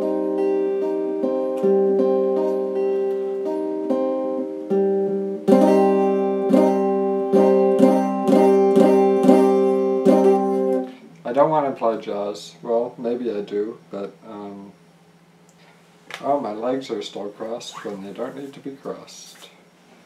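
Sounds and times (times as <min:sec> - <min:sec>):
electric guitar strummed chords: 0:00.0 - 0:11.1
electric guitar picking: 0:00.0 - 0:11.2.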